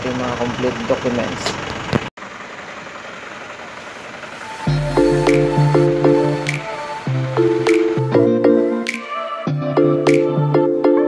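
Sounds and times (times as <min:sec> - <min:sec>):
sustained chords over bass: 0:04.4 - 0:08.9, 0:09.5 - 0:11.0.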